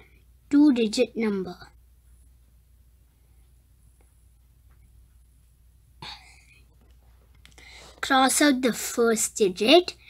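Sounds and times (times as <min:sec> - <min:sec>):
person speaking: 0:00.0 - 0:01.8
person breathing: 0:07.5 - 0:08.0.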